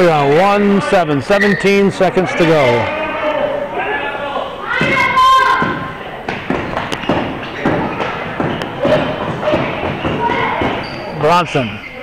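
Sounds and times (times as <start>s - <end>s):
spectators' voices: 0.0s - 12.0s
players' footfalls: 4.7s - 11.6s
basketball bouncing on gym floor: 4.8s - 11.2s.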